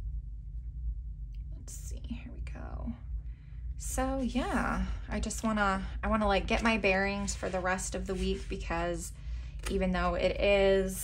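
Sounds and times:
steady low hum: 0:00.0 - 0:11.0
soft whispering: 0:01.4 - 0:03.1.

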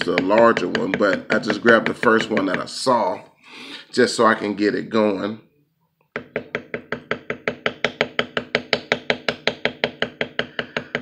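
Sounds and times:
mallet tapping tool on leather: 0:00.0 - 0:02.7, 0:06.1 - 0:11.0.

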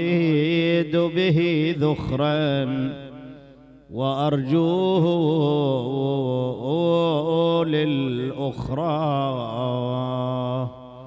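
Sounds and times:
man chanting mournful melody: 0:00.0 - 0:11.0.

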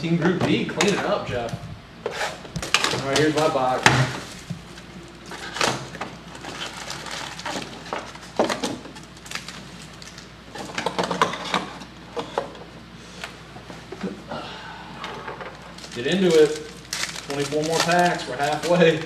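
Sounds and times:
plastic wrap crinkling: 0:02.6 - 0:10.8, 0:15.5 - 0:19.0.

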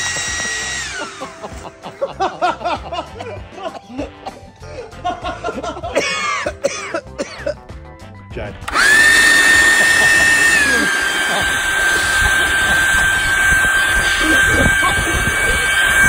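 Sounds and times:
leaf blower motor whine: 0:00.0 - 0:01.7, 0:08.6 - 0:16.0.

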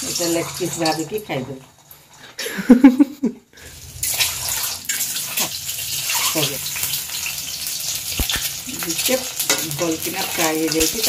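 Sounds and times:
eggs sizzling in hot oil: 0:00.0 - 0:02.3, 0:03.6 - 0:11.0.

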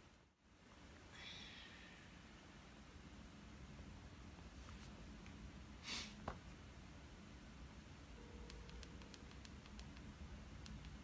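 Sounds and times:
small quiet clicks: 0:08.5 - 0:11.0.

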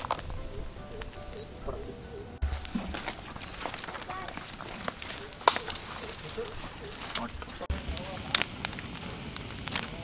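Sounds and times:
twig fire crackling and popping: 0:00.0 - 0:01.8, 0:02.4 - 0:10.0
chirping bird calls: 0:00.3 - 0:02.4, 0:05.0 - 0:07.2.

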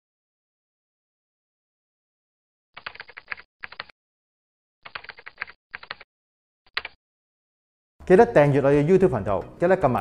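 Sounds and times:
rapid keyboard key clicks: 0:02.8 - 0:03.9, 0:04.8 - 0:06.0.

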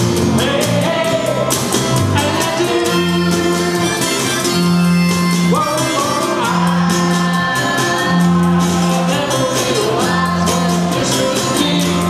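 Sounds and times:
acoustic guitar strummed: 0:00.0 - 0:12.0
voices singing together: 0:05.5 - 0:12.0.

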